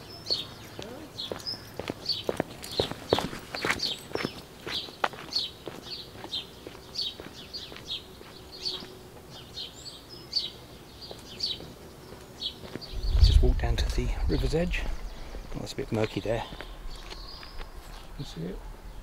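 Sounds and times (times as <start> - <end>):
footsteps on paved path: 0.0 - 18.5
small birds chirping: 0.0 - 19.0.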